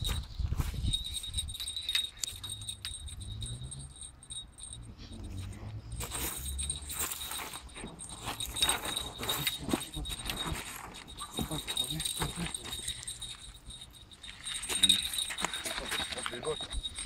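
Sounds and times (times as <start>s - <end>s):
fishing reel clicking and rattling: 1.0s - 4.7s.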